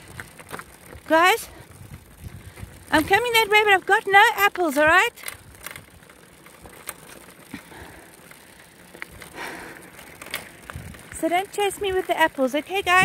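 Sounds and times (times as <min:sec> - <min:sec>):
bicycle tyres crunching gravel: 0:00.0 - 0:13.0
sharp clicks and rattles: 0:00.0 - 0:13.0.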